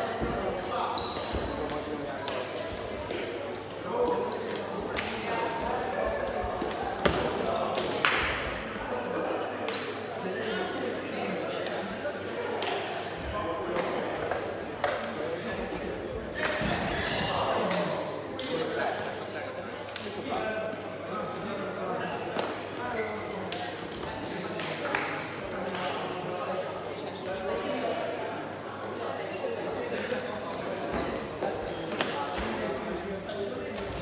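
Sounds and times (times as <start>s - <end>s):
indistinct chatter: 0.0s - 34.0s.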